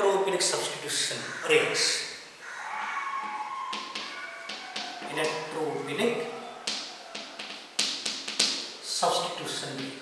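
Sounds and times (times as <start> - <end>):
chalk tapping and scraping on blackboard: 3.2 - 5.4, 6.6 - 8.7.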